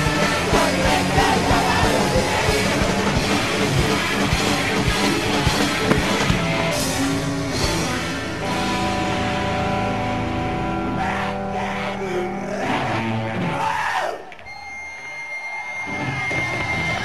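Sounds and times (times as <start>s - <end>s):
punk rock band playing: 0.0s - 11.9s
distorted electric guitars: 0.0s - 13.8s, 15.0s - 17.0s.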